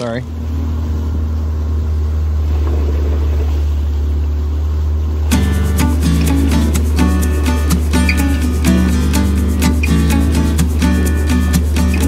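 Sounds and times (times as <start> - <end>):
outboard motor running: 0.0 - 12.0.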